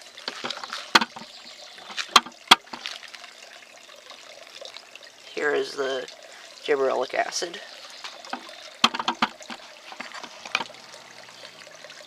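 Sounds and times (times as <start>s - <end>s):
soil rustling: 0.0s - 3.4s, 7.6s - 11.5s.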